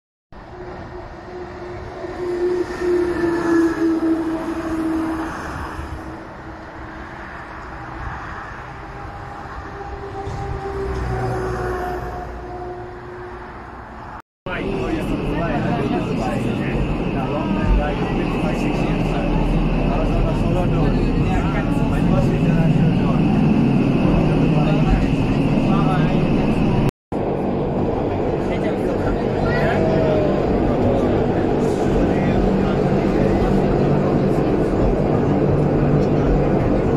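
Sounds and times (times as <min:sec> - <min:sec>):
electric railcar hum and rumble: 0:00.4 - 0:36.9
passengers chatting: 0:00.5 - 0:13.2, 0:14.5 - 0:36.9.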